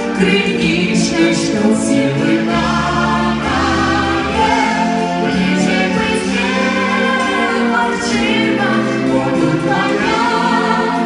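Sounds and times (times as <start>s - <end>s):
band and orchestra playing: 0.0s - 11.0s
voices singing with backing choir: 0.0s - 11.0s.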